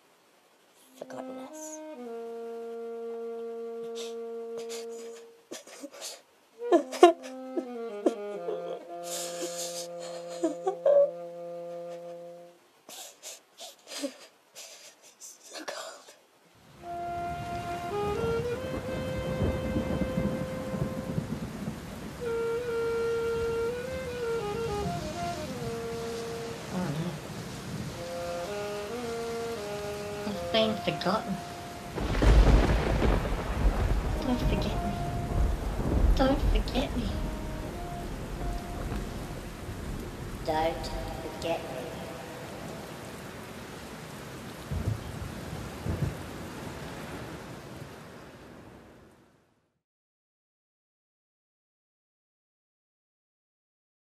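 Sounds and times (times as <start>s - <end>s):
rain falling: 0.0s - 49.6s
background music: 0.9s - 5.4s, 6.6s - 12.6s, 16.8s - 21.2s, 22.2s - 27.3s, 27.9s - 32.4s, 33.2s - 43.0s
thunder rumbling: 17.2s - 43.8s, 44.5s - 47.6s.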